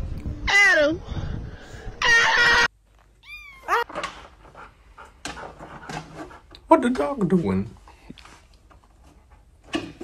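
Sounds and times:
dog panting: 0:04.4 - 0:06.6.

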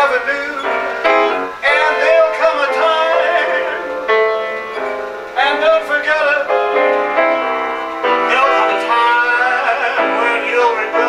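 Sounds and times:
man singing: 0:00.0 - 0:04.1, 0:05.4 - 0:11.0
keyboard chords: 0:00.0 - 0:11.0.

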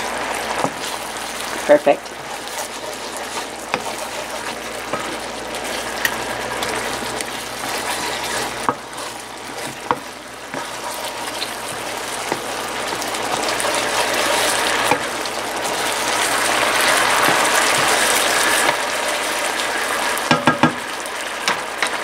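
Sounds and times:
sauce bubbling and sizzling: 0:00.0 - 0:22.0
wooden spatula clicking on pan: 0:20.3 - 0:20.8.

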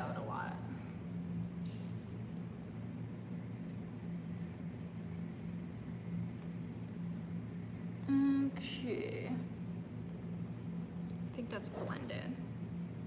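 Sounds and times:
low hum: 0:00.0 - 0:13.0.

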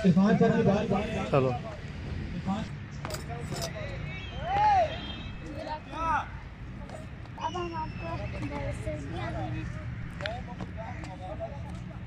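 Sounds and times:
children talking: 0:05.4 - 0:12.0.

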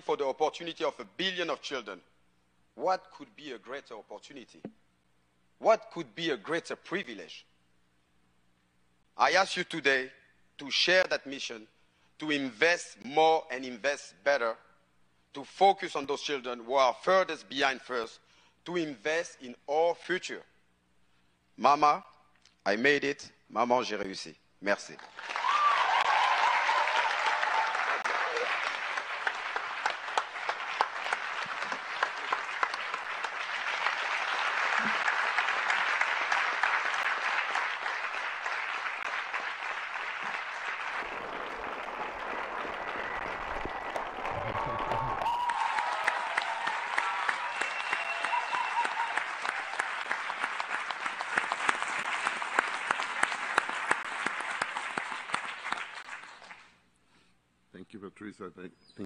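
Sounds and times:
audience applause: 0:25.1 - 0:56.7.

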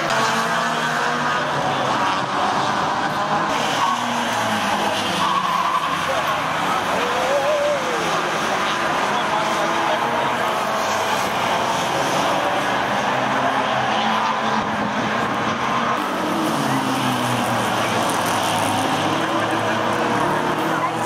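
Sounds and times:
racing car engines: 0:00.0 - 0:21.0.

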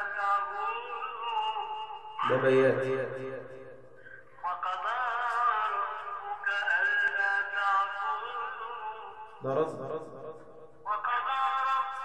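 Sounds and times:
man chanting recitation: 0:00.0 - 0:12.0.

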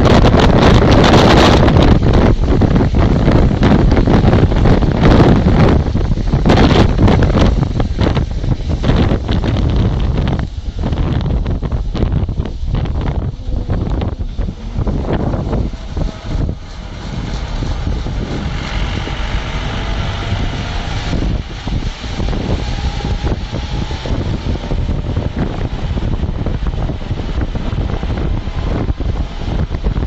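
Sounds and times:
engine and road noise rumble: 0:00.0 - 0:30.0
wind buffeting microphone: 0:00.0 - 0:30.0.

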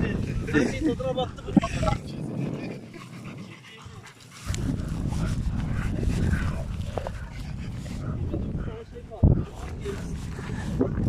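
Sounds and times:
dog panting: 0:00.1 - 0:11.0.

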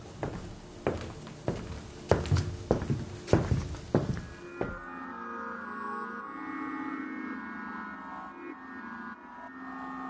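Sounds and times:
footsteps on wooden floor: 0:00.0 - 0:04.9
soft ambient music: 0:00.0 - 0:10.0.

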